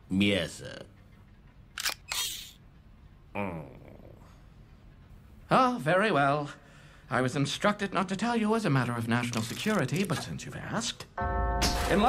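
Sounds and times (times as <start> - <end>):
sharp mechanical click: 1.8 - 2.6.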